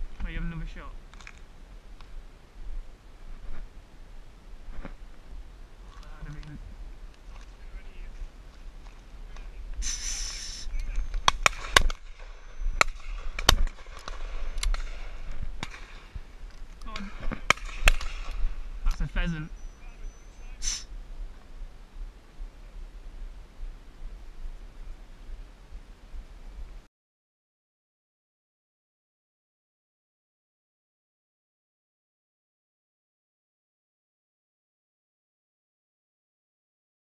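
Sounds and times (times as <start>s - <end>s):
shotguns firing: 11.2s - 16.1s, 16.9s - 18.6s.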